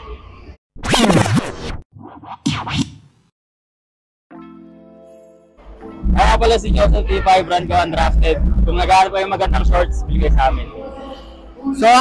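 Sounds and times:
turntable record scratch: 0:00.8 - 0:03.0, 0:06.0 - 0:10.6.

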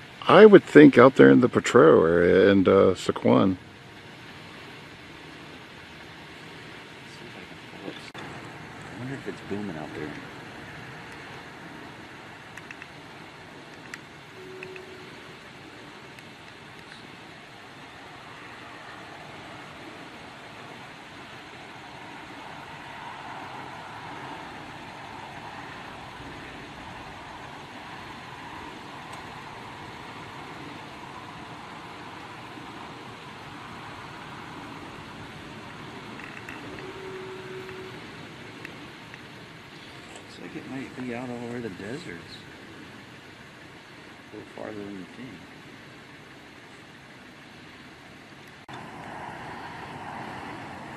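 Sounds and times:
distant road traffic: 0:00.0 - 0:50.9.

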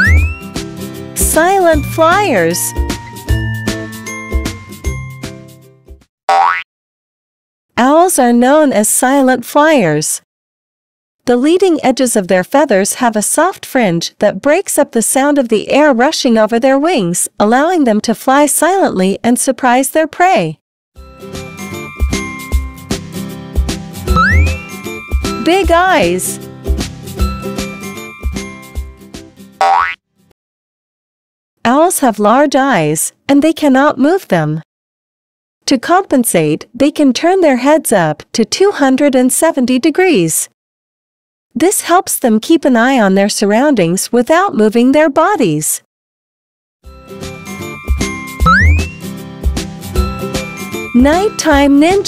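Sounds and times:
cartoon boing sound effect: 0:00.0 - 0:00.4, 0:06.3 - 0:06.7, 0:24.1 - 0:24.7, 0:29.6 - 0:30.0, 0:48.4 - 0:49.1
upbeat children's jingle: 0:00.0 - 0:05.6, 0:21.0 - 0:26.4, 0:27.1 - 0:29.0, 0:46.9 - 0:49.3, 0:49.9 - 0:52.0.

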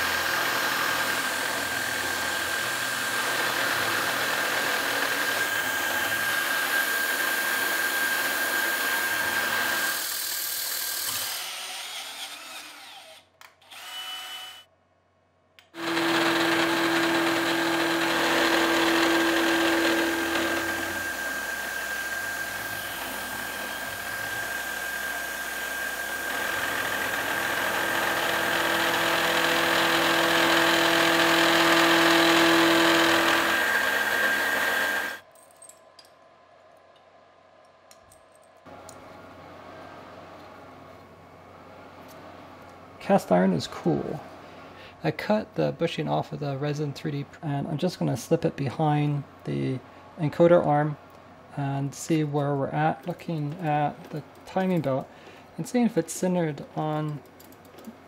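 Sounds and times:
end mill cutting metal: 0:00.0 - 0:11.4, 0:15.8 - 0:35.2
milling machine whine: 0:15.8 - 0:35.2.

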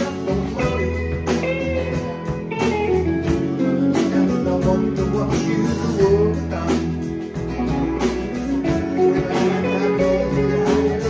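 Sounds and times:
bass guitar: 0:00.0 - 0:11.0
drum kit beat: 0:00.0 - 0:11.0
electric guitars: 0:00.0 - 0:11.0.

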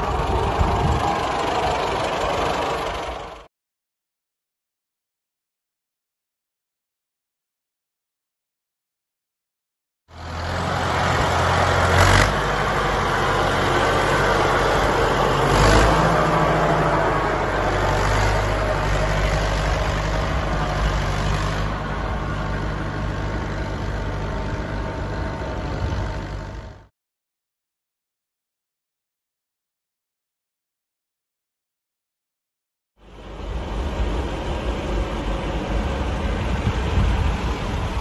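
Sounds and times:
tractor engine running: 0:00.0 - 0:03.5, 0:10.1 - 0:26.9, 0:33.0 - 0:38.0.

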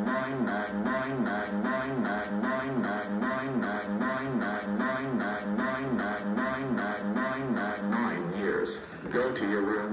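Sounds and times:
synthesised computer voice repeating: 0:00.0 - 0:09.9.

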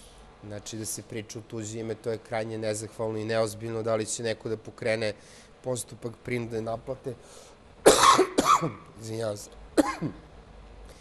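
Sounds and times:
man coughing: 0:07.8 - 0:08.9, 0:09.8 - 0:10.2.

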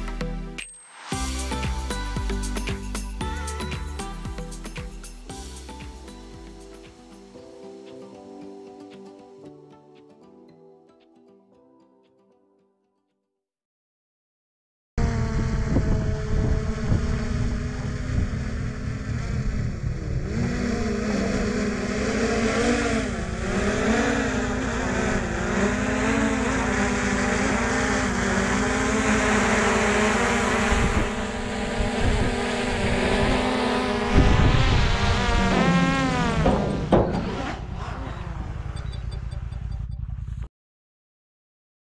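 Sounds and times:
drone propellers whining: 0:15.0 - 0:40.4
rushing air rumble: 0:30.7 - 0:36.3.

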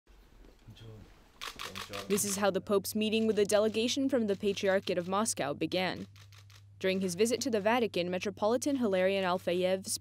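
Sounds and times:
camera shutter clicks: 0:01.4 - 0:02.4.

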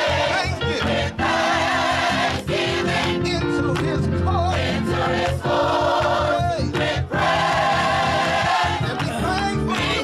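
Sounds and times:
gospel choir singing: 0:00.0 - 0:10.0
hands clapping: 0:02.2 - 0:10.0.

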